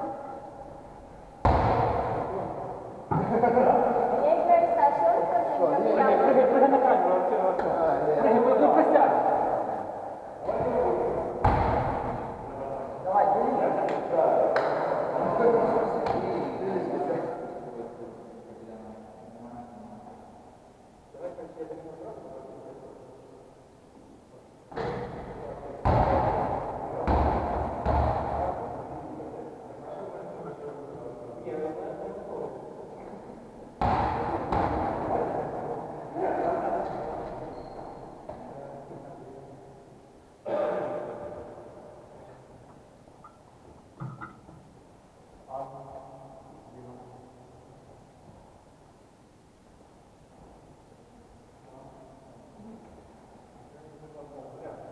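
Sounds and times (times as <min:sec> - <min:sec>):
indistinct voices in echoing hall: 0:00.0 - 0:54.9.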